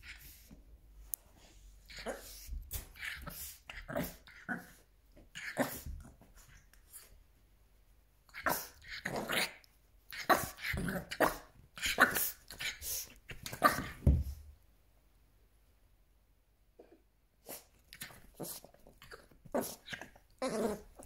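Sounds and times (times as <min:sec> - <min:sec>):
puppy yapping and growling: 0:19.1 - 0:21.0.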